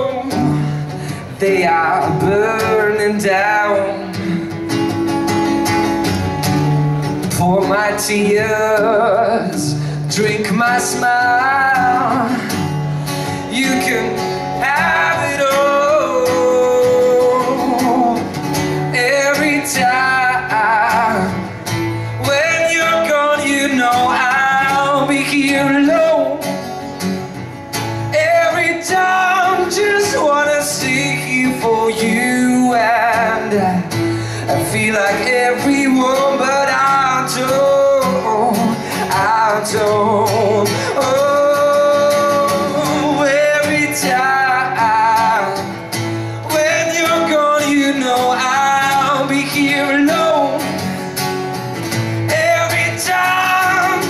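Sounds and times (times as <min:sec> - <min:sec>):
man singing into microphone: 0:00.0 - 0:04.6, 0:07.2 - 0:12.6, 0:13.2 - 0:21.4, 0:22.2 - 0:26.5, 0:28.1 - 0:45.8, 0:46.4 - 0:51.0, 0:52.2 - 0:54.0
musical backing track: 0:00.0 - 0:54.0.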